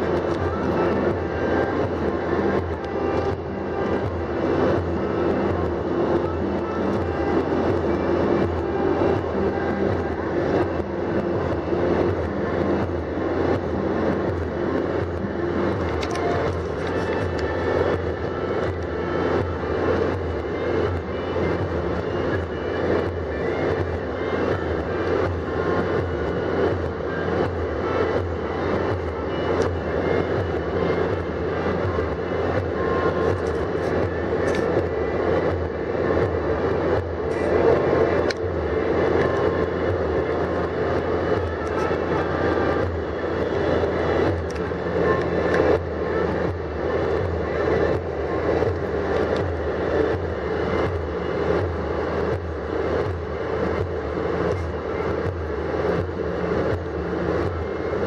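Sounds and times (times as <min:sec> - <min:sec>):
car interior driving drone: 0:00.0 - 0:58.0.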